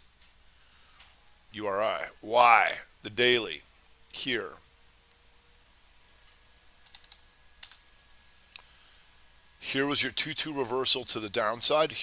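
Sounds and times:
faint keyboard typing: 5.6s - 7.8s.

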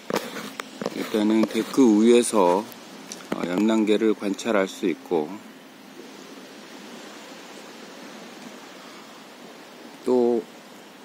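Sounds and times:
steady outdoor background hiss: 0.0s - 11.0s.

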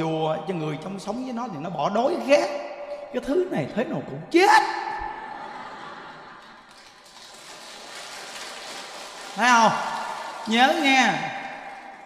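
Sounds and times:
audience applause: 5.5s - 11.9s.

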